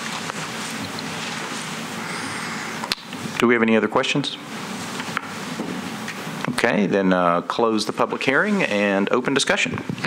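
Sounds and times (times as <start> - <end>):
room tone hiss: 0.0 - 9.6.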